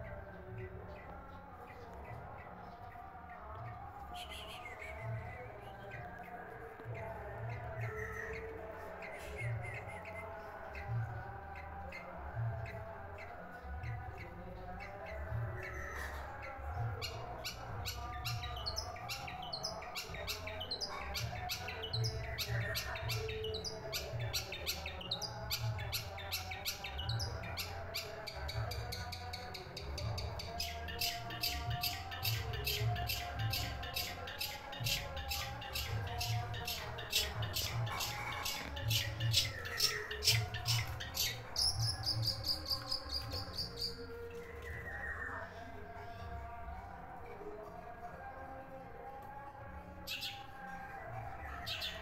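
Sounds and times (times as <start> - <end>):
shrike singing chattering song: 0.0 - 45.4.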